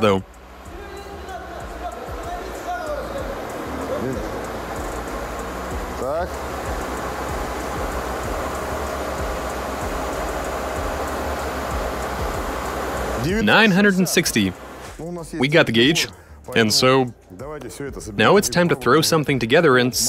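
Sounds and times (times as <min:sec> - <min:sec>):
car drivetrain whirring hum: 0:00.0 - 0:15.0.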